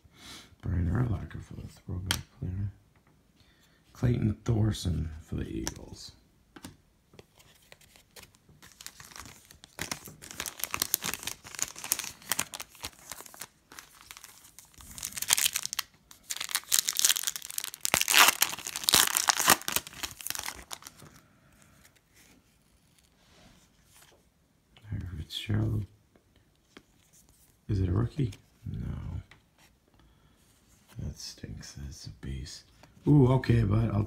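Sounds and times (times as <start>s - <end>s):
foil wrapper tearing and crinkling: 8.6s - 21.0s.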